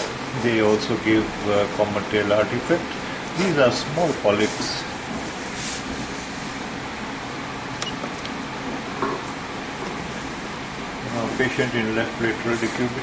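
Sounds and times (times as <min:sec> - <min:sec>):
steady hum and hiss: 0:00.0 - 0:13.0.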